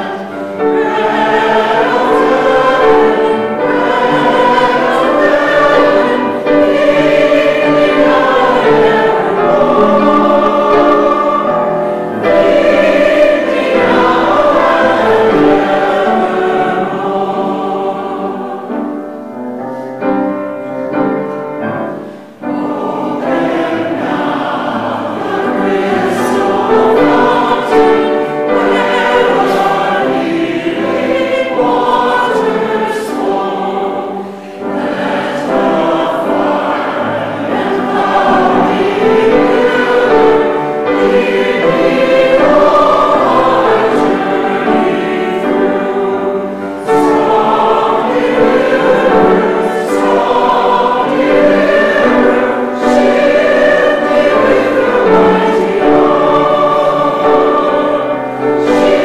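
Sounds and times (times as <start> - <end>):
choir and congregation singing hymn: 0.0 - 59.0
piano: 0.0 - 59.0.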